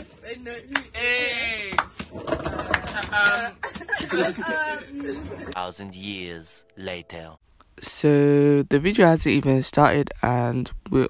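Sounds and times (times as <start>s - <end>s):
women laughing together: 2.8s - 5.6s.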